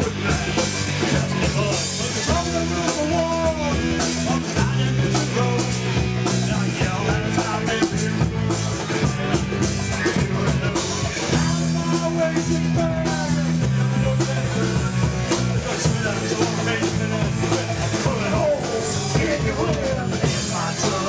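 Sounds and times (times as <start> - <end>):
amplified electric guitars: 0.0 - 21.0
drum kit: 0.0 - 21.0.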